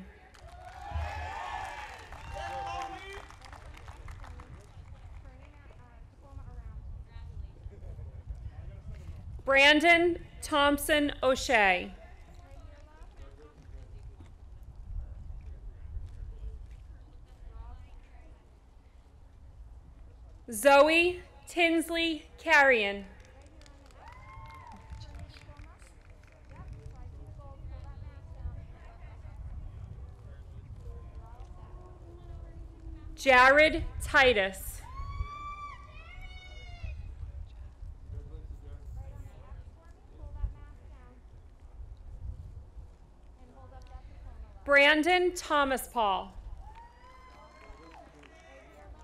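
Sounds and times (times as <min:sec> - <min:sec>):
crowd cheering woo: 0:00.4 - 0:03.4, 0:24.0 - 0:25.0, 0:34.8 - 0:36.8, 0:46.6 - 0:48.6
steady low rumble: 0:26.6 - 0:36.1.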